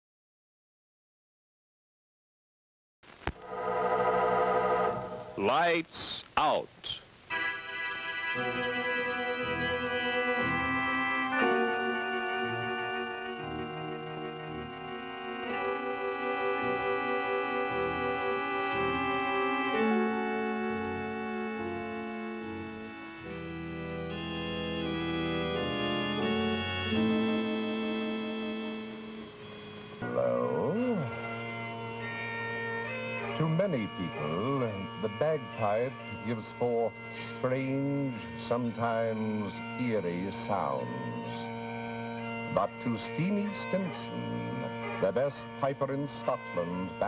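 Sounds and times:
organ playing slow chords: 3.4 - 5.7, 7.3 - 47.0.

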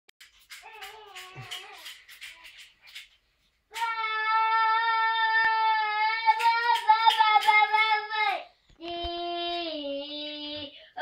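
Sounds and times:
boy breathing softly: 10.6 - 11.0.

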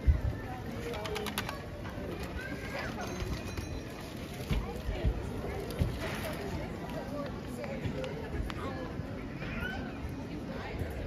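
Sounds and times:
passers-by talking: 0.0 - 11.0
footsteps on cobblestones: 2.4 - 8.6.

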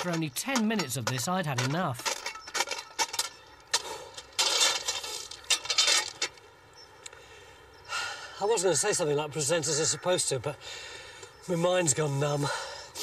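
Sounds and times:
shovel scraping crushed stone: 0.0 - 6.4.

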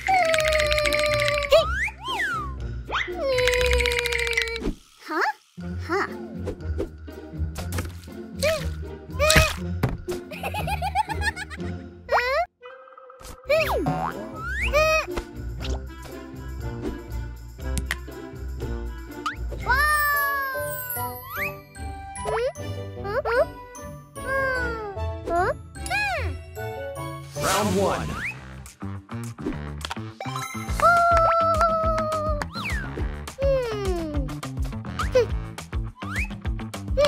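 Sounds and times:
cartoon background music: 0.0 - 37.0
thunk: 9.8 - 10.1.

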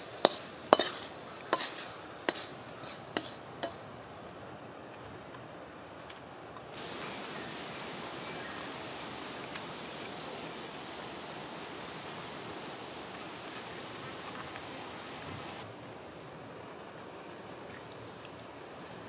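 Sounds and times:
outdoor background hiss: 0.0 - 19.0.

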